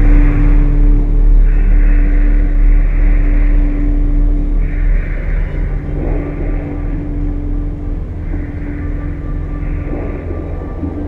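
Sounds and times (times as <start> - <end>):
deep steady rumble: 0.0 - 11.0.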